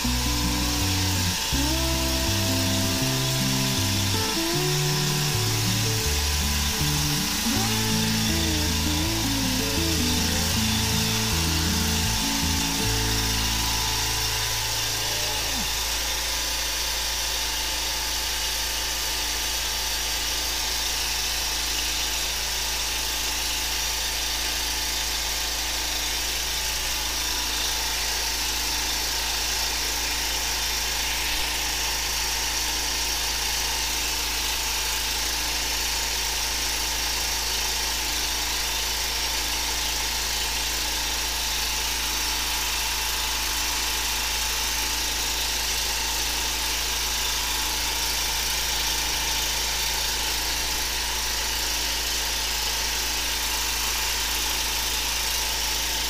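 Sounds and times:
jet hose hissing: 0.0 - 16.3
pump engine humming: 0.0 - 56.0.

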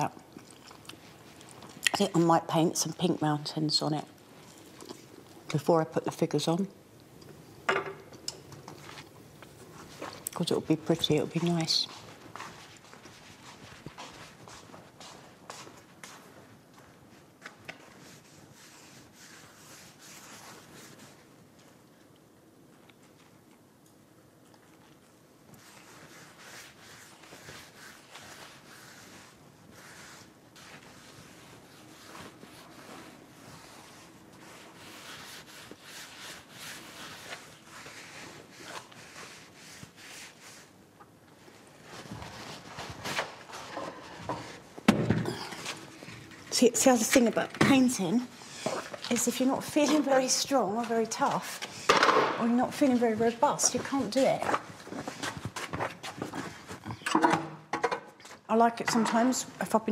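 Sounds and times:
paintbrush rubbing on canvas: 17.8 - 21.3, 25.6 - 40.8.

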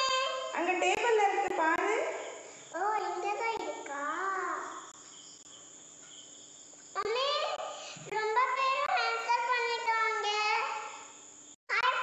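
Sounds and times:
child's voice: 0.0 - 0.5, 2.7 - 4.9, 7.0 - 11.0, 11.7 - 12.0.

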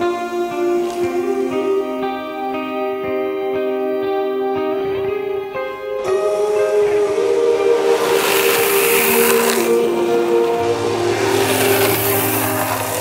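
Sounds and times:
background music: 0.0 - 13.0
longboard wheels sliding on asphalt: 7.3 - 13.0.

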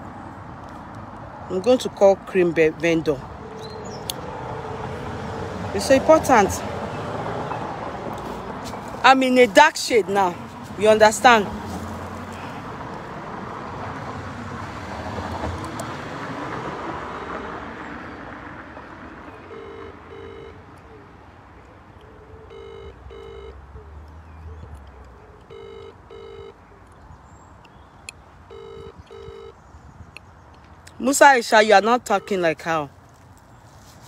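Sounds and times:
telephone ringback tone: 17.1 - 17.6, 19.4 - 20.6, 22.4 - 23.6, 25.4 - 26.6, 28.5 - 29.6.

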